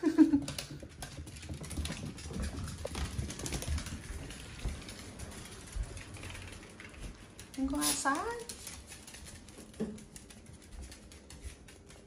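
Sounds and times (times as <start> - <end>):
dog claws clicking on floors: 0.0 - 12.0.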